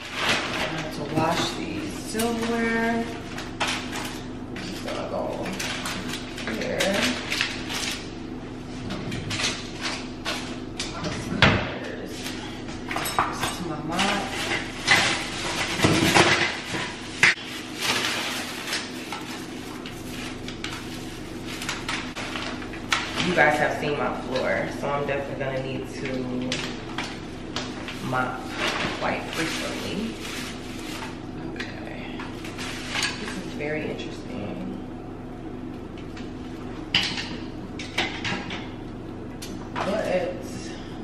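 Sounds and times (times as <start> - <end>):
person speaking: 0.6 - 3.2
packaging rustling and crinkling: 13.9 - 23.3, 26.6 - 31.3.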